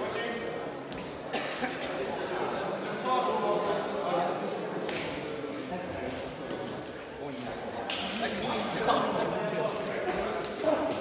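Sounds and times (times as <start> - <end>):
indistinct talking echoing: 0.0 - 11.0
person coughing: 1.3 - 1.8.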